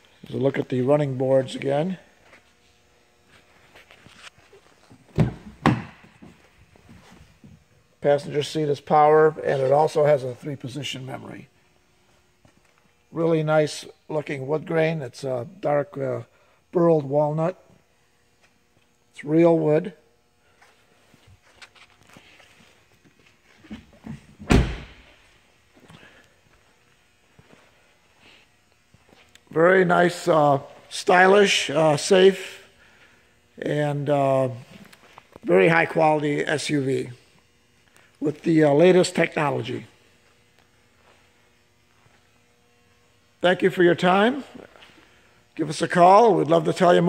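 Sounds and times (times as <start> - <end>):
car door opening thunks: 24.4 - 25.0.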